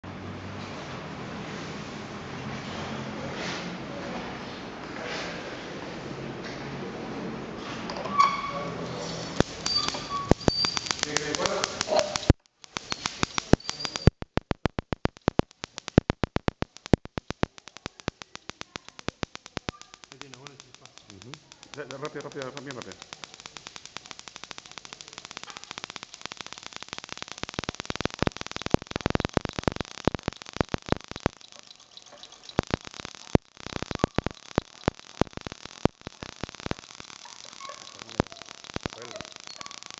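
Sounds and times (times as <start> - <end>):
electric sparks cracking: 8.8 - 39.9.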